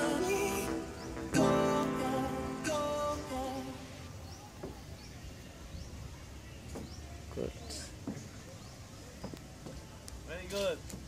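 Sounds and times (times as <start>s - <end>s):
faint distant voices: 0.7s - 11.0s.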